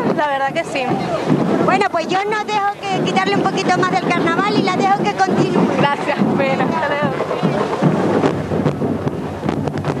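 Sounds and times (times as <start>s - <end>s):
voices close to microphone: 0.0s - 9.3s
crowd noise: 0.0s - 10.0s
music: 0.0s - 10.0s.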